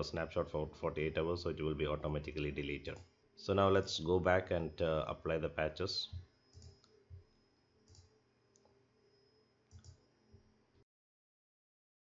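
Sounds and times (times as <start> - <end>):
faint computer mouse clicks: 6.5 - 7.0, 7.9 - 8.8, 9.7 - 10.0.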